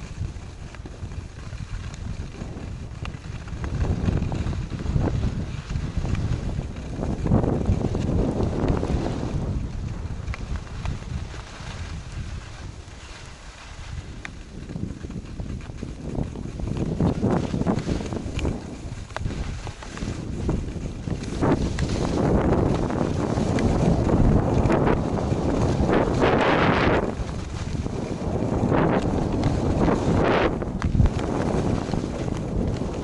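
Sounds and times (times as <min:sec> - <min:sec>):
skis scraping on snow: 0:00.0 - 0:33.0
wind on microphone: 0:00.0 - 0:33.0.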